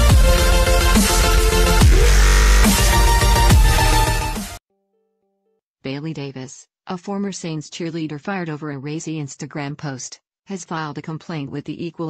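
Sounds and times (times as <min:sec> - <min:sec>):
electronic music with heavy bass: 0:00.0 - 0:04.6
falling bass sweep: 0:00.4 - 0:04.4.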